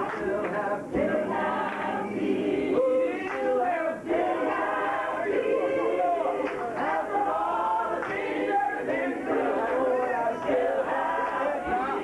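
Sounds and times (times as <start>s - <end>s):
choir singing a cappella gospel: 0.0s - 12.0s.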